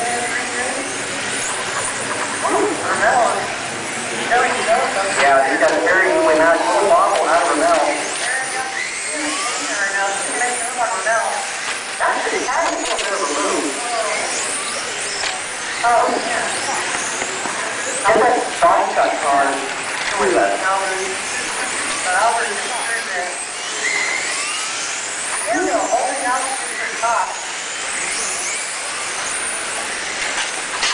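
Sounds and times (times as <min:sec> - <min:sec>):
rc cars motors whining: 0:00.0 - 0:30.9.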